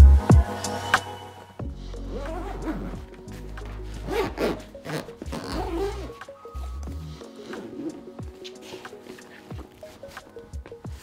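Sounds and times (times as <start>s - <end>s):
background music: 0.0s - 11.0s
zipper of gig bag opening: 2.1s - 10.1s.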